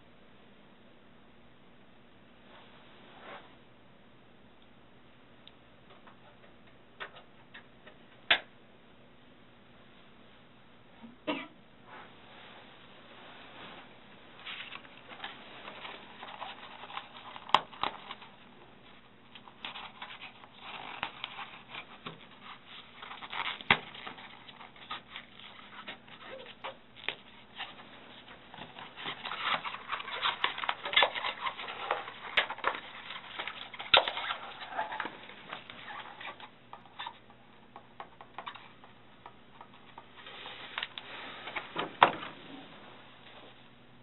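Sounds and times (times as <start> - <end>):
rustling of paper: 13.4 - 37.3.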